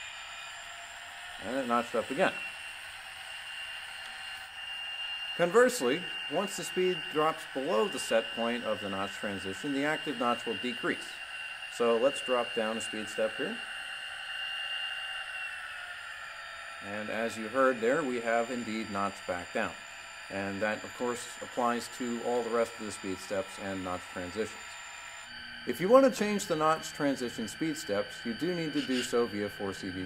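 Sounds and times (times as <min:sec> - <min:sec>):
model diesel locomotive engine sound: 0:00.0 - 0:30.0
thin steady whine: 0:00.0 - 0:30.0.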